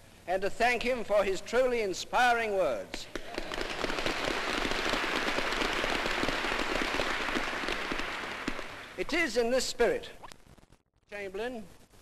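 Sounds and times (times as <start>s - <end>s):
audience applauding: 3.1s - 9.1s.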